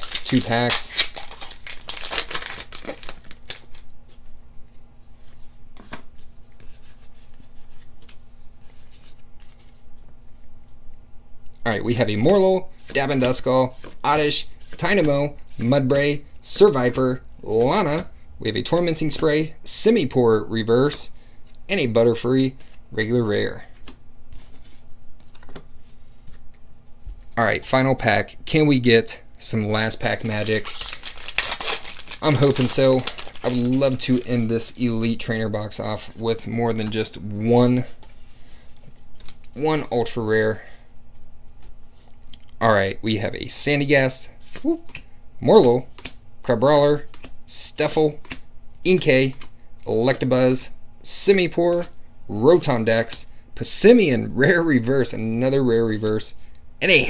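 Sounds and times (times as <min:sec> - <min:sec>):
foil pack tearing and crinkling: 0:00.0 - 0:03.9, 0:30.2 - 0:34.5
cards rustling and clicking: 0:00.0 - 0:10.4, 0:23.7 - 0:27.4, 0:30.1 - 0:35.1, 0:37.8 - 0:39.6, 0:44.5 - 0:46.2, 0:47.0 - 0:49.6.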